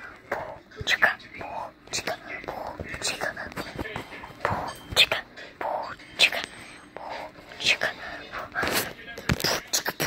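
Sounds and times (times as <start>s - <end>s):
child whispering: 0.0s - 3.6s, 5.0s - 8.8s.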